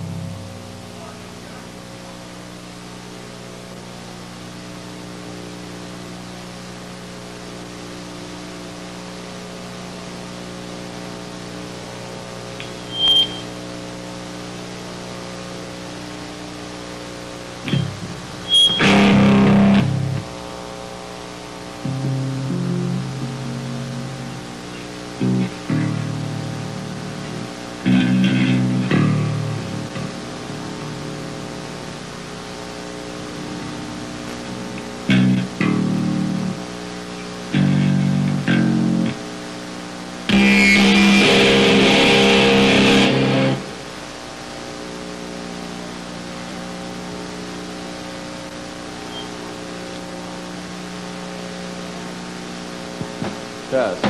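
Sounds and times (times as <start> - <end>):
bass guitar notes: 0.0 - 0.7, 17.6 - 20.3, 21.8 - 36.6, 37.5 - 39.2, 40.3 - 44.0
amp hum: 0.0 - 54.0
distorted electric guitar chords: 0.0 - 54.0.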